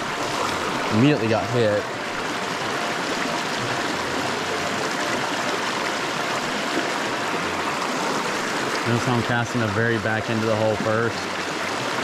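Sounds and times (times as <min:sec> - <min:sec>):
creek water rushing over stones: 0:00.0 - 0:12.0.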